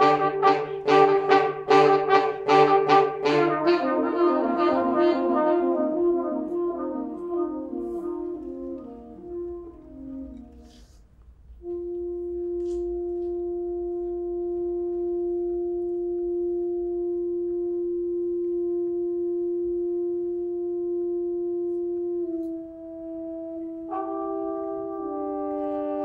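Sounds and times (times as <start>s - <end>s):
wind instrument holding a note: 0.0s - 26.0s.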